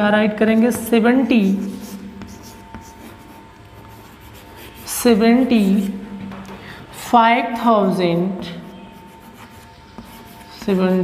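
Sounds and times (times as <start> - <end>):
chalk tapping: 0.5 - 5.9, 7.9 - 11.0
chalk scraping on chalkboard: 0.6 - 6.0, 7.8 - 11.0.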